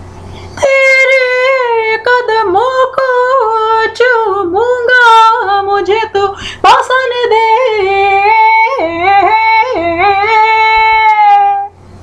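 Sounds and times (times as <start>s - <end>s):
person singing long held notes: 0.6s - 11.8s.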